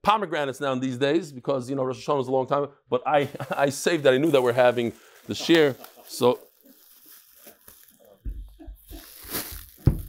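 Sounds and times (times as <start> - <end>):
plastic bag rustling: 3.6 - 10.0
fruit thumping on table: 9.8 - 10.0.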